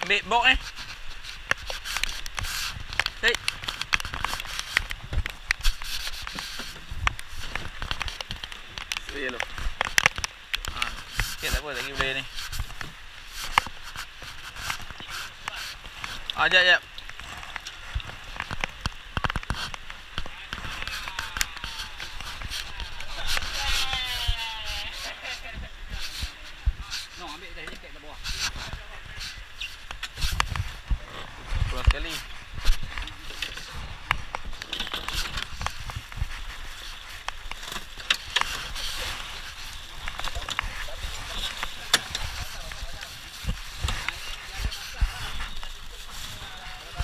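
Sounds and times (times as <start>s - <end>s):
indistinct voices: 20.3s - 29.5s.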